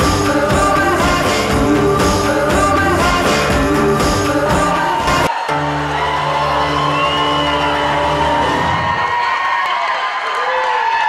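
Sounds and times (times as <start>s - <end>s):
crowd cheering and whooping: 4.6s - 11.0s.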